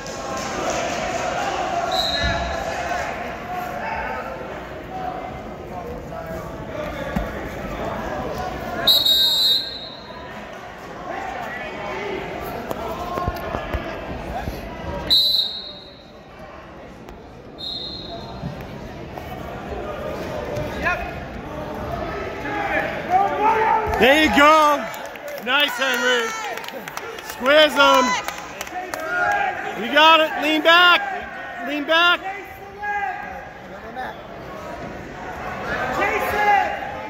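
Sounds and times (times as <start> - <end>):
voices echoing in a gymnasium: 0.0 - 37.0.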